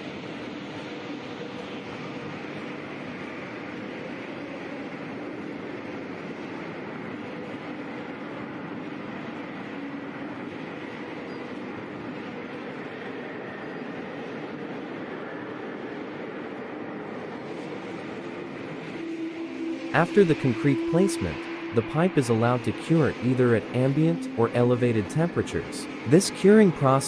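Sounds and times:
factory machinery droning: 0.0 - 27.0.

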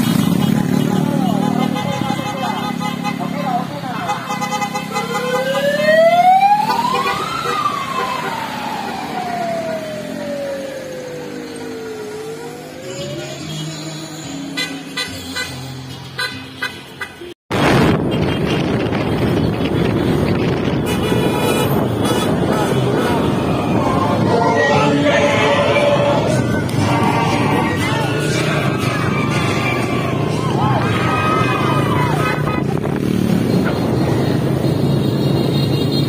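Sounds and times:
vehicle siren wailing: 4.9 - 14.0, 21.4 - 35.9
loud steady rushing noise: 17.5 - 36.0.

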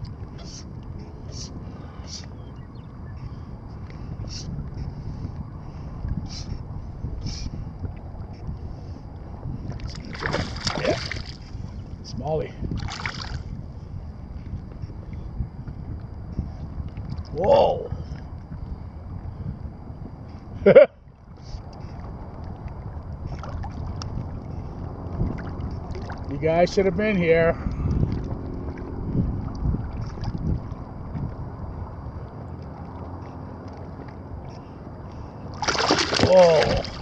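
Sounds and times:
choppy water lapping: 0.0 - 15.4, 16.5 - 37.0
wind noise: 0.0 - 37.0
small waves lapping: 9.7 - 11.8, 12.7 - 13.5, 21.4 - 26.4, 31.8 - 37.0
fish thrashing and splashing: 9.8 - 11.5, 12.8 - 13.4, 35.5 - 37.0.

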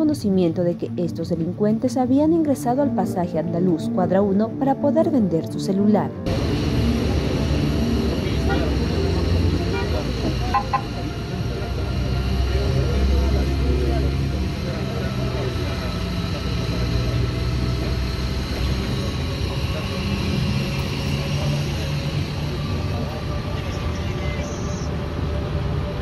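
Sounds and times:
indistinct voices: 6.0 - 26.0
vehicle engine idling: 6.3 - 26.0.

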